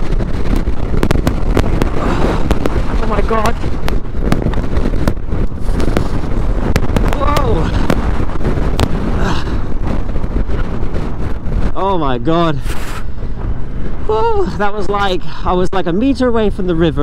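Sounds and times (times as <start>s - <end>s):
motorcycle riding on gravel: 0.0s - 14.1s
wind buffeting microphone: 0.0s - 17.0s.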